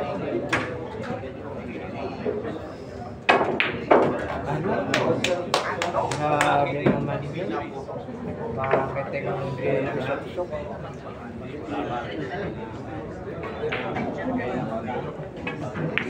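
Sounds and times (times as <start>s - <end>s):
murmur of spectators' voices: 0.0s - 16.0s
pool balls knocking: 3.3s - 4.4s, 8.6s - 8.9s.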